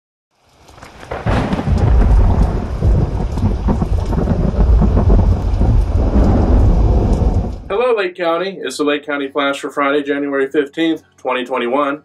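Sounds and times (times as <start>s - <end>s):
steady rain: 0.3s - 7.8s
thunder rumbling: 0.8s - 7.8s.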